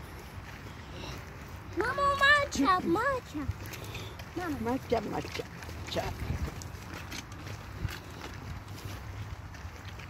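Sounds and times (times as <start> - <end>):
footsteps on dirt path: 0.0 - 10.0
wind rumble on microphone: 5.4 - 10.0.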